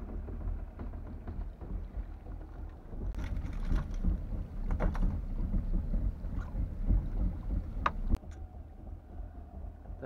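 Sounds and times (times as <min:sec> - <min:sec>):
knocks and clicks on boat deck: 0:00.0 - 0:08.5
wind rumbling on microphone: 0:00.0 - 0:10.0.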